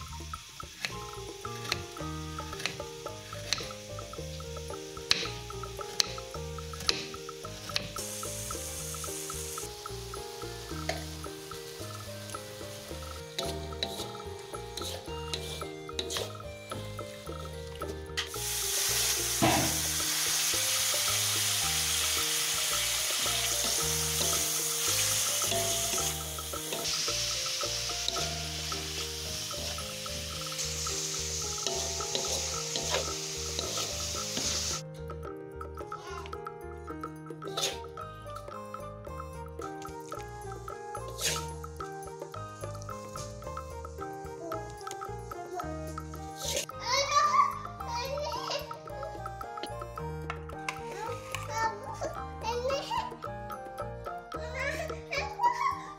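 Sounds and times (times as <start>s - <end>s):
hot oil sizzling: 0.0s - 34.9s, 39.4s - 49.8s
background music: 0.0s - 55.9s.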